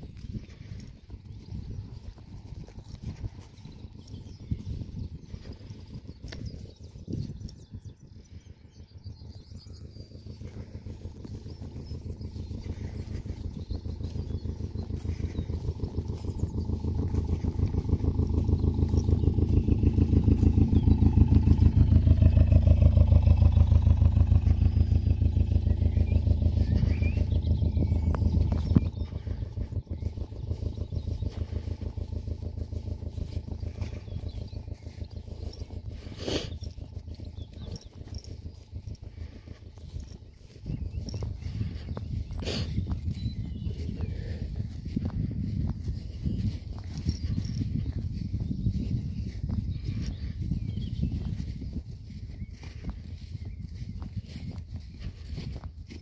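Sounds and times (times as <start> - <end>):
engine low throb: 0.0 - 56.0.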